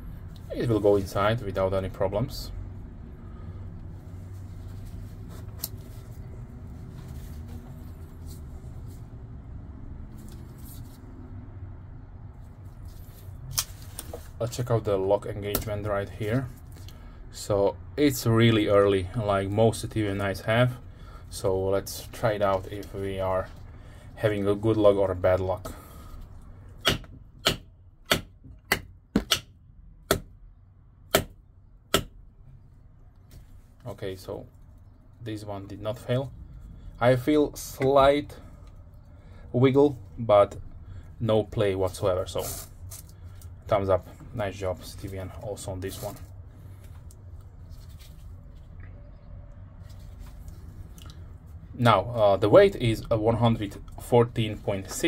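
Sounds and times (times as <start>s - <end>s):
low background rumble: 0.0s - 55.0s
knife striking wooden stick: 26.8s - 29.5s, 30.1s - 30.3s, 31.1s - 32.2s.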